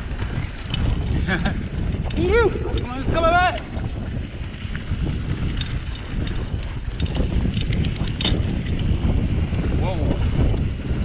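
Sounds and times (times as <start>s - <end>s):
bike clicks and rattles: 0.0s - 11.0s
wind buffeting microphone: 0.0s - 11.0s.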